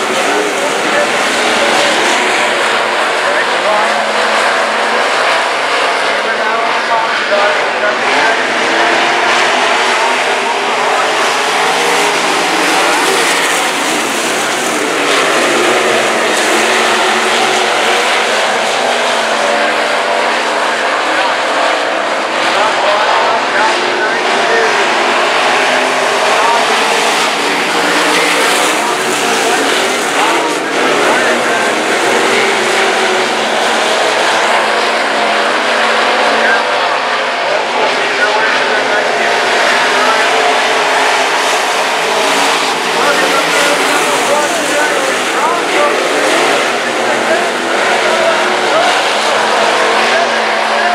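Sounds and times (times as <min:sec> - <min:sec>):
stock car engines racing: 0:00.0 - 0:50.9.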